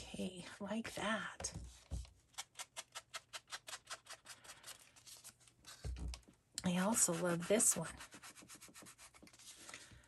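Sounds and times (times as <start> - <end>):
foam pad dabbing paper: 6.8 - 9.1.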